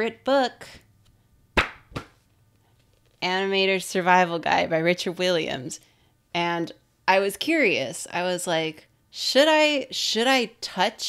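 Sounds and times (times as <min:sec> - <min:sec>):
sharp slaps on a book: 0:01.6 - 0:02.2.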